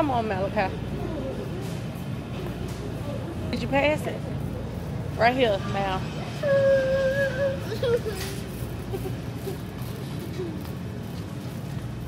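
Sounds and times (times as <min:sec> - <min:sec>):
supermarket background hum: 0:00.0 - 0:12.0.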